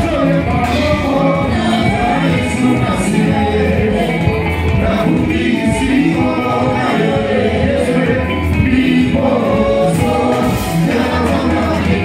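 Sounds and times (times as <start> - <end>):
band with steady beat: 0.0 - 12.0
gospel choir singing: 0.0 - 12.0.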